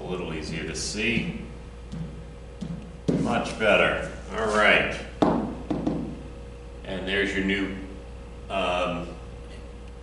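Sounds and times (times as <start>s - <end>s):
taps on whiteboard: 1.9s - 3.3s, 5.2s - 6.2s.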